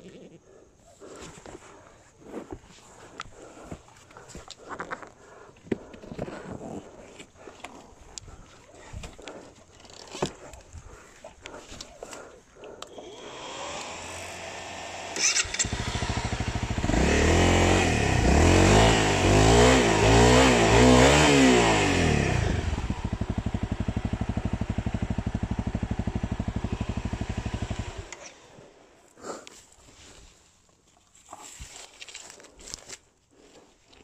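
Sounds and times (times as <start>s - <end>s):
motorcycle engine revving and idling: 12.1s - 28.6s.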